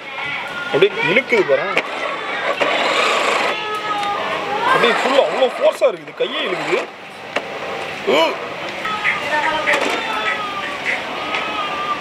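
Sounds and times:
toy car motor whirring: 0:01.7 - 0:06.9.

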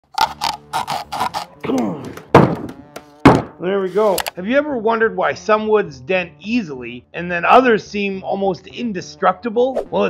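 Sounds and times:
wooden board knocking on golf ball: 0:02.0 - 0:03.6.

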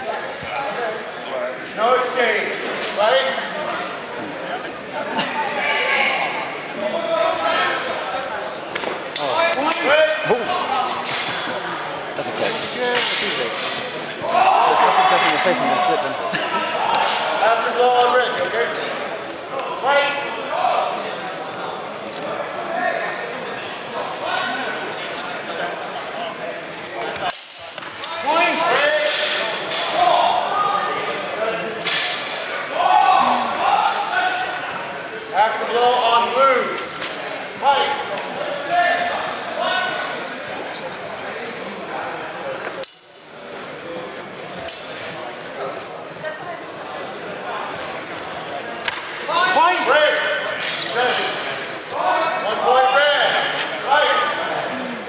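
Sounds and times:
indistinct voices and calls echoing: 0:00.0 - 0:55.0
men shouting calls: 0:14.2 - 0:16.9.

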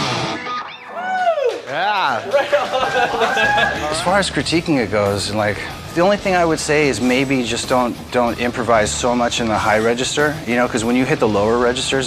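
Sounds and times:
loud rock music: 0:00.0 - 0:01.0, 0:03.0 - 0:12.0.

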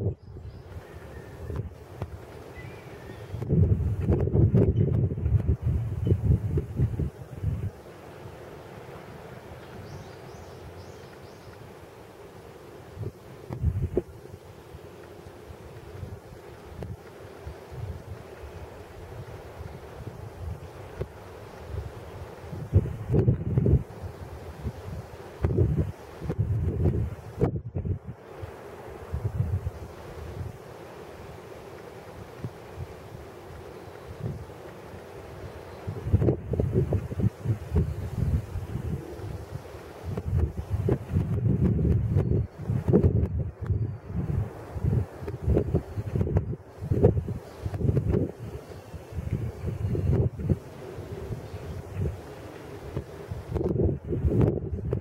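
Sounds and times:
wind buffeting microphone: 0:00.0 - 0:11.6, 0:12.8 - 0:55.0.

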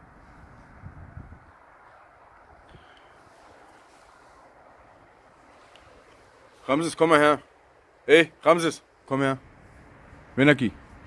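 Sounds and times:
faint outdoor hiss: 0:00.0 - 0:11.0.

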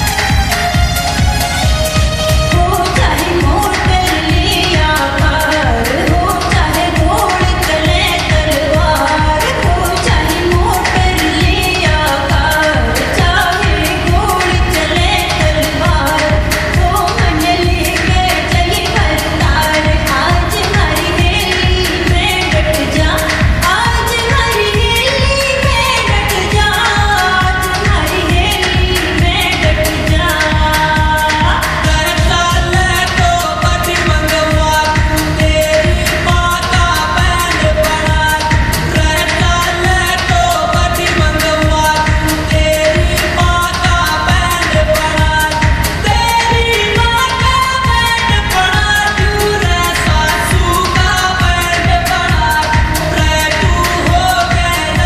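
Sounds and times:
driving beat: 0:00.0 - 0:55.0
pop song with singing: 0:00.0 - 0:55.0.

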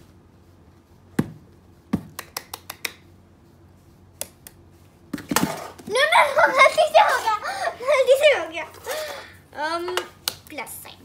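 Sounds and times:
children talking: 0:05.9 - 0:11.0.

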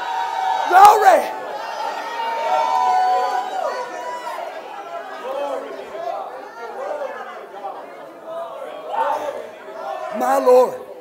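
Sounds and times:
congregation voices overlapping: 0:00.0 - 0:11.0.

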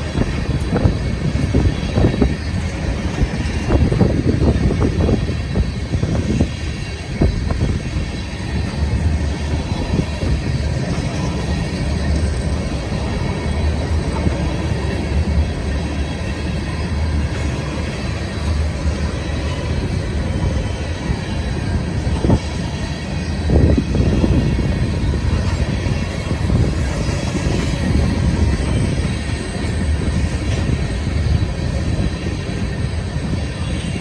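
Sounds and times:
freight train wheels rumbling: 0:00.0 - 0:34.0
sharp train clanks: 0:00.0 - 0:34.0.

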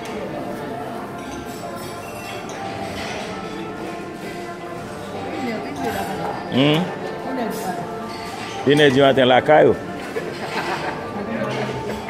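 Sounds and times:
background chatter: 0:00.0 - 0:12.0
dishes and cutlery clinking: 0:00.0 - 0:12.0.

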